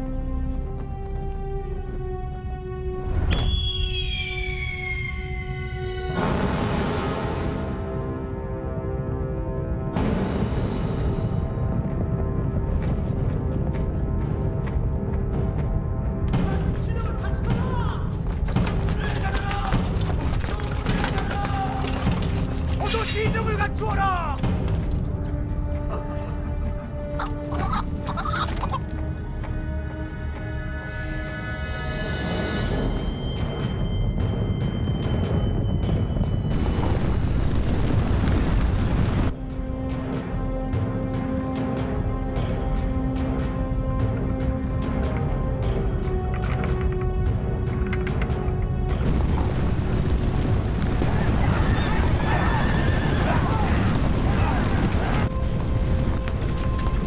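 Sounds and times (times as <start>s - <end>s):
horses galloping: 17.5s - 23.0s, 49.0s - 57.0s
horses whinnying: 51.1s - 55.3s.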